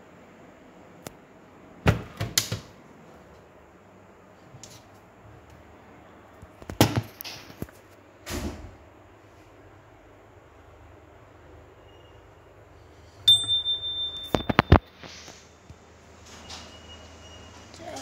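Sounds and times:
small bell ringing: 0:13.3 - 0:14.7.

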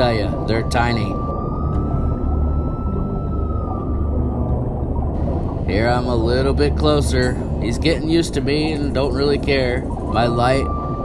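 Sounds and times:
high whine: 0:00.0 - 0:11.0
underwater low rumble: 0:00.0 - 0:11.0.

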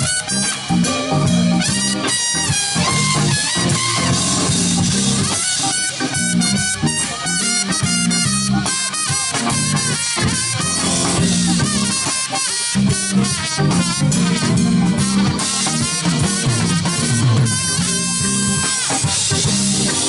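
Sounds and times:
live funk band playing: 0:00.0 - 0:20.0.

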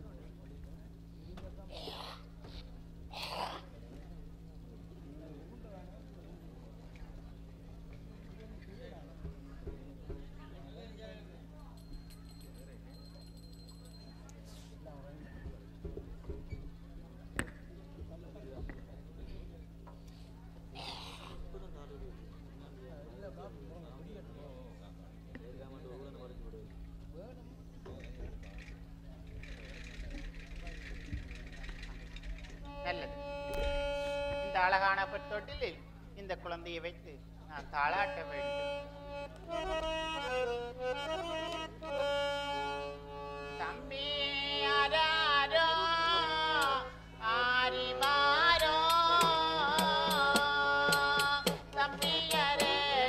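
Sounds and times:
electrical hum: 0:00.0 - 0:53.0
harmonium held note: 0:32.6 - 0:35.5, 0:38.0 - 0:46.9.

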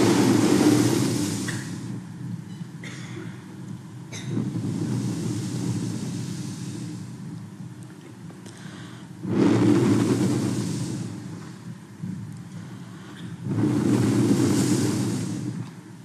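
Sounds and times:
breaths blown into microphone: 0:00.0 - 0:02.0, 0:04.1 - 0:07.2, 0:08.4 - 0:11.7, 0:12.4 - 0:15.8
low recording hum: 0:00.0 - 0:16.0.

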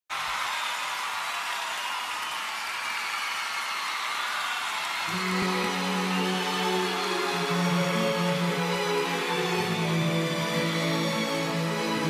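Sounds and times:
audience applauding: 0:00.1 - 0:12.0.

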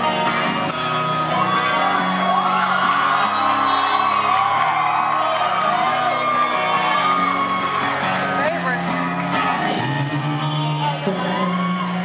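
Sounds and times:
fans whooping and screaming: 0:00.0 - 0:12.0
live rock band: 0:00.0 - 0:12.0.

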